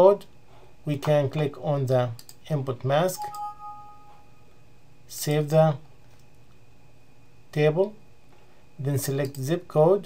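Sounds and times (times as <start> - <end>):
two-note alert chime: 3.2 - 4.4.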